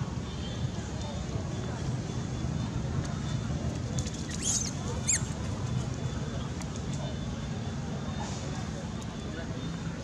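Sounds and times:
monkey squealing: 0:04.3 - 0:05.3.

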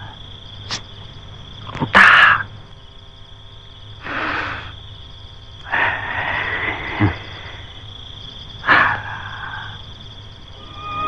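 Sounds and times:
frogs croaking: 0:00.0 - 0:11.0
high insect drone: 0:00.0 - 0:11.0
held eerie tone: 0:10.5 - 0:11.0.

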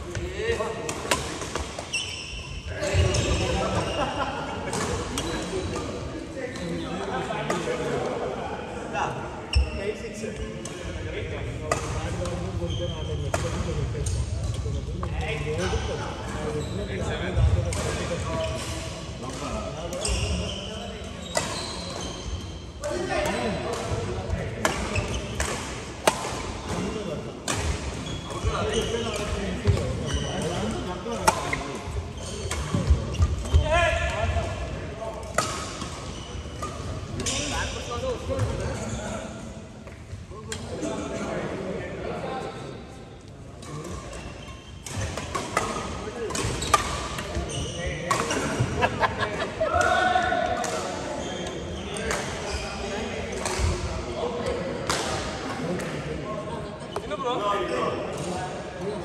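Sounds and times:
rackets striking shuttlecock: 0:44.8 - 0:47.4.

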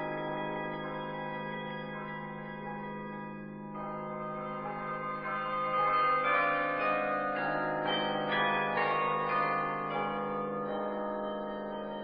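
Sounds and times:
bells ringing: 0:00.0 - 0:02.8, 0:03.8 - 0:12.0.

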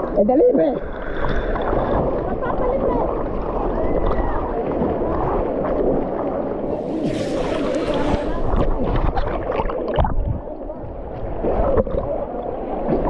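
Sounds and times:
water splashing on camera: 0:00.9 - 0:13.0
spray hiss: 0:06.7 - 0:08.7.

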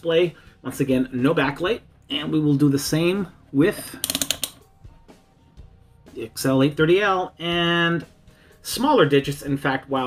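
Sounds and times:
multimeter rotary switch clicking: 0:04.0 - 0:04.6.

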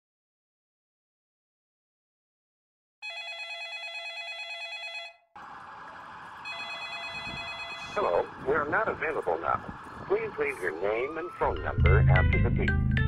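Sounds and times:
electronic telephone ringing: 0:03.0 - 0:05.3, 0:06.4 - 0:09.4
answering machine: 0:06.4 - 0:11.7.

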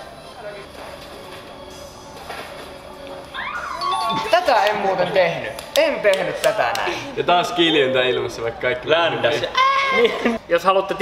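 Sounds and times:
low background music: 0:00.0 - 0:09.5
high-pitched voice sliding in pitch: 0:03.4 - 0:04.6.

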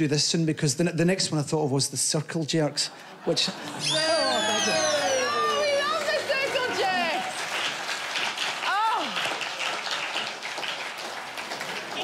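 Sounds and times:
studio audience laughing: 0:02.7 - 0:07.1
audience clapping: 0:03.6 - 0:12.0.

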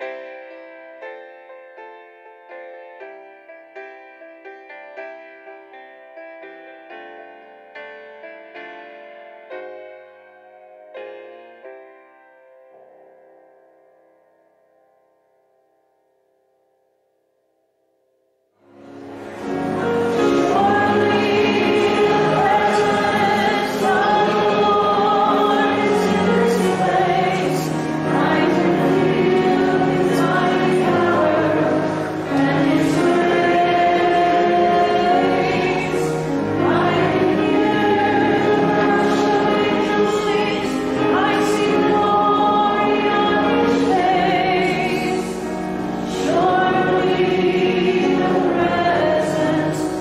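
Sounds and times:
choir singing a hymn: 0:18.8 - 0:50.0.

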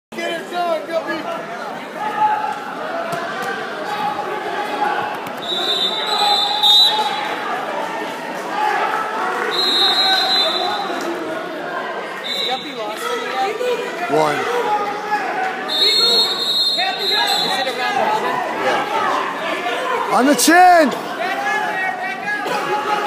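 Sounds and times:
echoing crowd chatter: 0:00.1 - 0:23.0
referee whistle blasts: 0:05.4 - 0:07.3, 0:09.5 - 0:11.0, 0:15.7 - 0:17.8.

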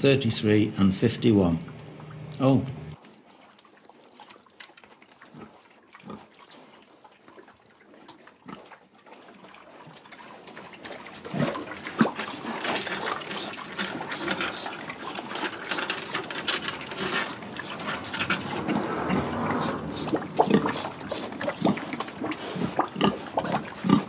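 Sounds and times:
pigs grunting: 0:17.6 - 0:24.0
pigs squealing: 0:18.7 - 0:24.0.

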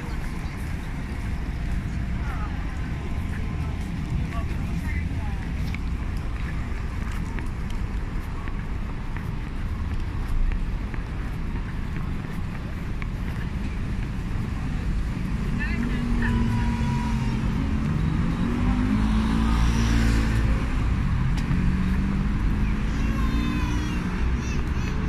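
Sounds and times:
people's voices: 0:00.0 - 0:25.0
road traffic rumble: 0:00.0 - 0:25.0.

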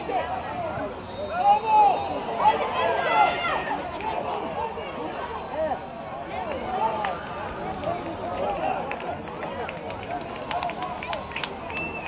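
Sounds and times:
children shouting: 0:02.4 - 0:03.8.

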